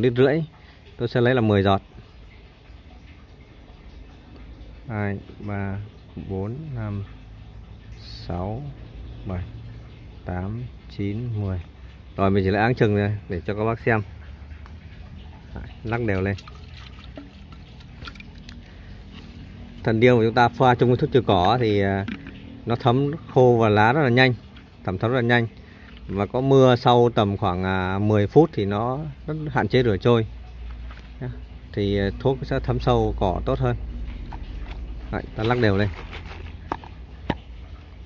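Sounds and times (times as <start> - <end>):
water sloshing in plastic bottle: 13.7 - 26.9, 33.5 - 38.0
plastic sprayer being shaken: 35.4 - 36.9.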